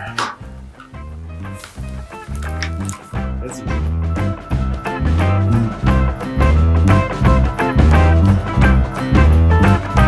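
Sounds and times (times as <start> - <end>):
instrumental music with bass line: 0.0 - 10.0.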